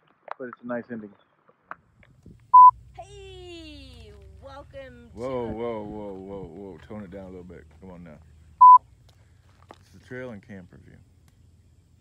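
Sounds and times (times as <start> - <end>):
short electronic beep: 8.6 - 8.8.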